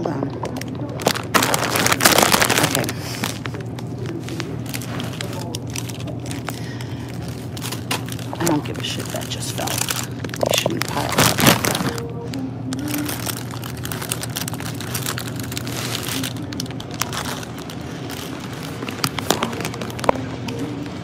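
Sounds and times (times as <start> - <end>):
soft slow background music: 11.6 - 17.1, 19.4 - 21.0.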